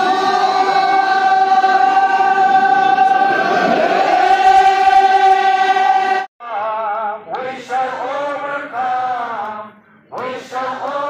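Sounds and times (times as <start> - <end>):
group of voices chanting in unison: 0.0 - 11.0.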